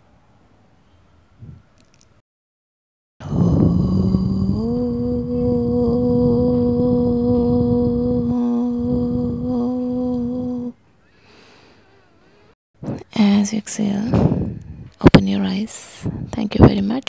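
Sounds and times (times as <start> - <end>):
woman chanting: 3.2 - 10.8.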